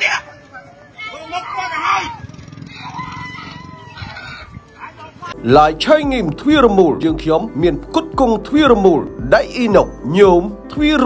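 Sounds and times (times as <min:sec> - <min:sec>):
rooster crowing: 0:00.0 - 0:05.0
man's voice: 0:05.1 - 0:11.0.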